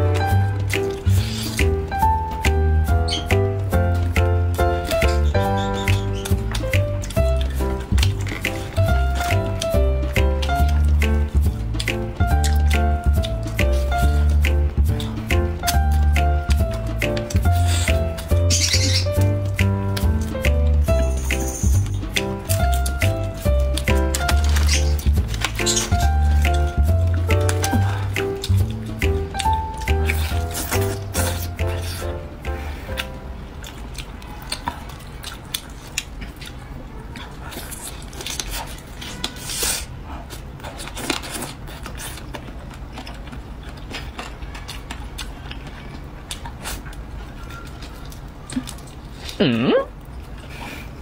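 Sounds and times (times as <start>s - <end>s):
chewing: 4.0s - 20.5s, 21.3s - 49.4s, 50.0s - 51.0s
chicken being torn apart: 22.5s - 32.1s, 33.0s - 49.4s.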